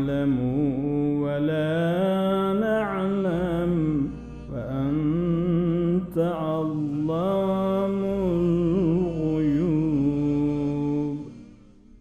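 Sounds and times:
man chanting: 0.0 - 11.4.

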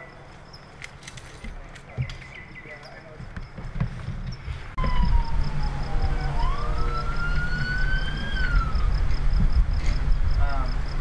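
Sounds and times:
low rumble: 4.6 - 11.0
emergency siren wailing: 4.8 - 9.3.

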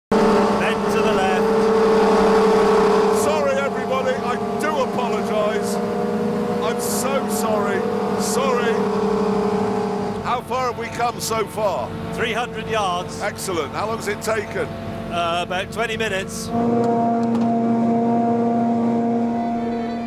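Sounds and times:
hovercraft engine drone: 0.1 - 20.0
voices: 0.6 - 1.8, 3.1 - 5.9, 6.5 - 9.0, 10.2 - 16.6.

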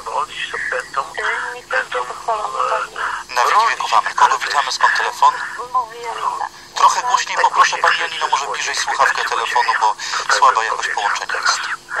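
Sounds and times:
person speaking over radio: 0.0 - 12.0.

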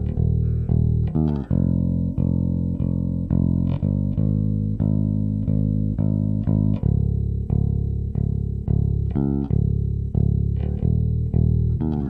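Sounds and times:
electric bass guitar: 0.0 - 12.0.

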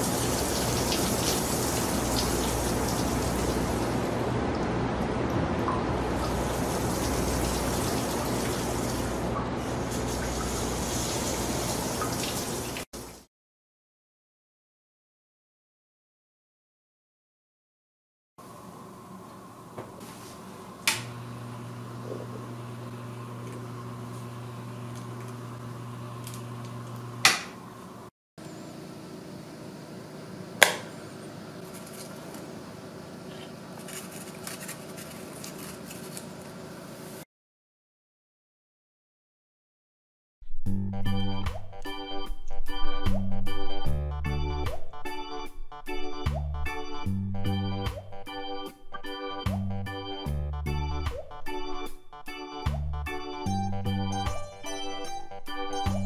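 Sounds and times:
running water rushing: 0.0 - 4.1, 6.2 - 13.2.

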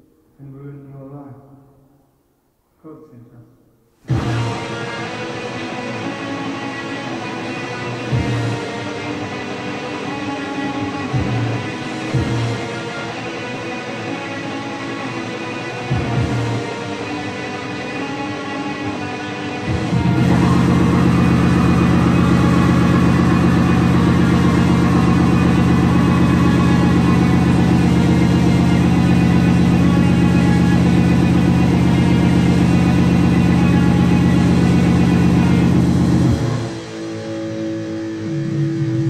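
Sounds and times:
distorted low drone: 15.9 - 39.0.

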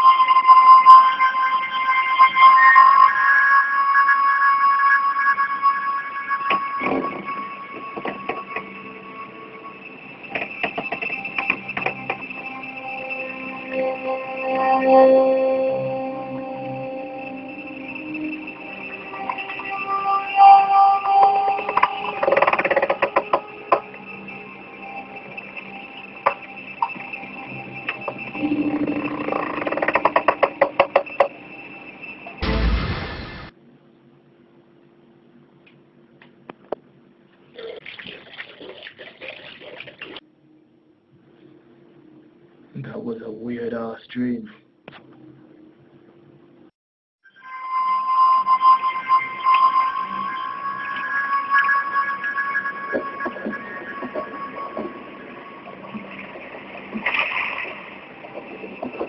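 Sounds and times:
steady high tone: 0.0 - 29.5, 31.2 - 33.5, 47.3 - 56.9.

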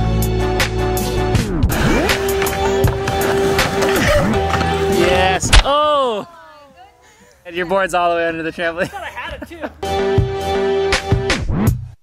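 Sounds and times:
skateboard rolling on ramp: 1.8 - 5.6.

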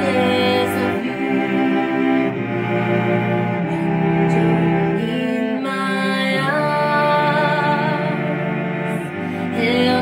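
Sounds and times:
cello line with vibrato: 0.0 - 10.0
cellos bowing slow chords: 0.0 - 10.0.

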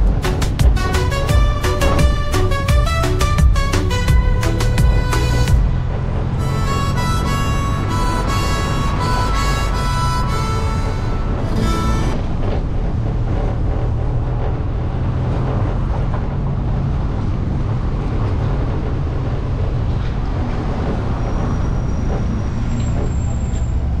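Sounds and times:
surrounding traffic: 0.0 - 24.0
vehicle engine and road noise: 0.0 - 24.0.

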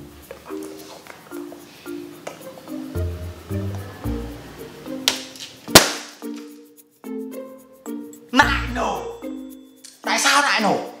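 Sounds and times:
light plucked music: 0.0 - 11.0
balloon bursting bang: 5.7 - 6.2.

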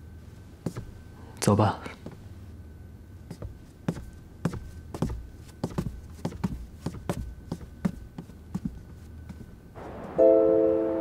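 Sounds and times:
faint room hum: 0.0 - 11.0
soft footsteps: 0.5 - 1.0, 3.2 - 9.9.

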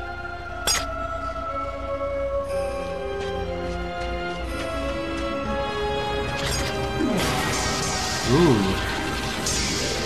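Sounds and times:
dramatic soundtrack music: 0.0 - 10.0.

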